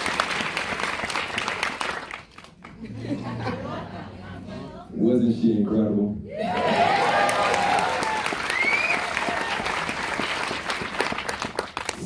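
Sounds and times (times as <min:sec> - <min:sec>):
audience applauding: 0:00.0 - 0:02.8, 0:06.4 - 0:12.0
high rising whoop: 0:06.3 - 0:09.6
voices cheering: 0:06.3 - 0:09.9.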